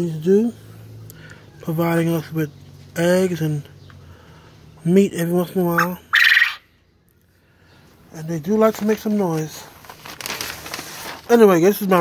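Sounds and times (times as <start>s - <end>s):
quail harsh raspy call: 5.7s - 6.7s.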